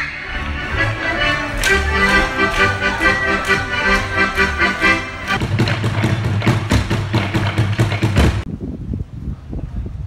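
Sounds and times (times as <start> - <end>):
deep drums beaten with sticks: 5.3 - 8.5.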